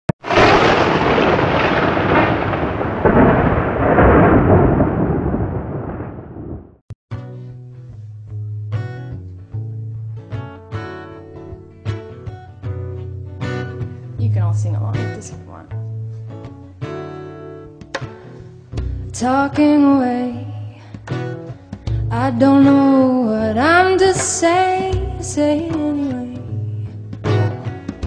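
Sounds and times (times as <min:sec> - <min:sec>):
thunderclap rumbling: 0:00.2 - 0:06.8
strummed acoustic guitar music: 0:07.1 - 0:28.0.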